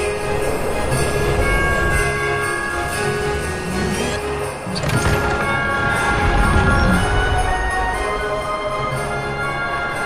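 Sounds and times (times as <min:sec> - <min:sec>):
christmas music: 0:00.0 - 0:10.0.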